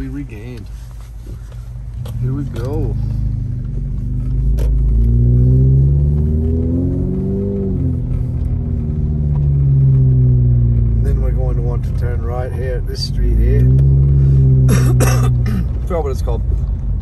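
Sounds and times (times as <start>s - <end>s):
car engine rumble from inside: 0.0s - 17.0s.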